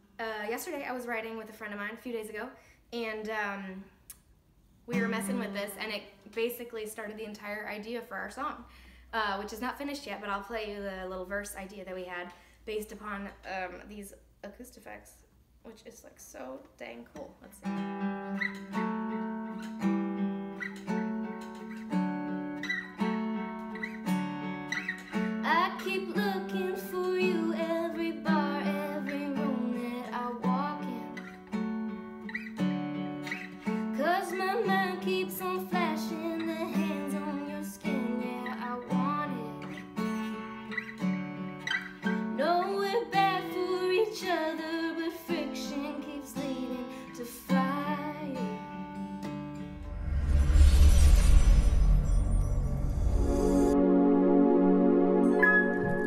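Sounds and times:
acoustic guitar picking: 4.9 - 5.8, 17.6 - 49.8
woman singing: 25.4 - 31.3, 33.9 - 40.6, 42.3 - 48.7.

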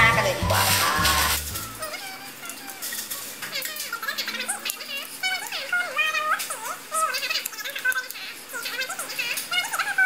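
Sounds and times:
background music: 0.0 - 1.9.

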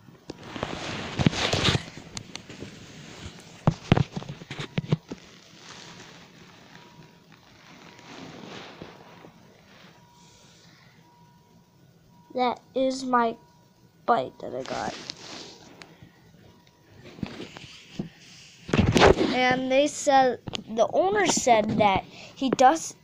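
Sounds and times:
phone rubbing and rustling: 0.3 - 10.4, 14.5 - 15.8, 17.0 - 19.7
faint steady tone: 2.0 - 18.7.

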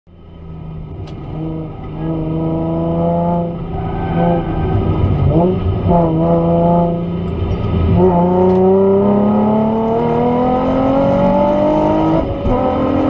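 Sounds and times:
car engine accelerating hard: 0.4 - 13.0.

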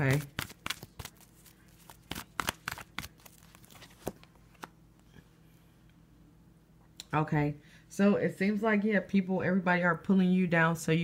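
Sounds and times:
cards being shuffled: 0.0 - 4.8.

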